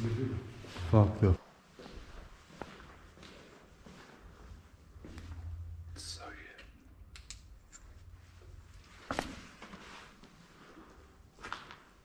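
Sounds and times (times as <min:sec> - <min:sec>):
faint footsteps: 0:00.0 - 0:05.9, 0:07.8 - 0:12.0.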